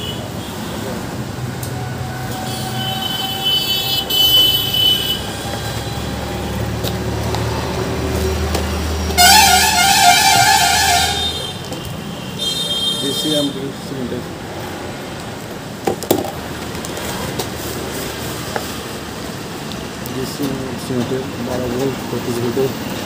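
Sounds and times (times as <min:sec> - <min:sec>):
car horns honking: 0:00.0 - 0:00.9, 0:02.2 - 0:06.6, 0:09.1 - 0:13.7.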